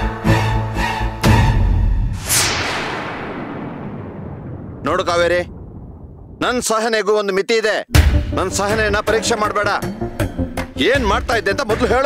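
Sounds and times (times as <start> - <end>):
whip-like whoosh: 2.2 - 3.4.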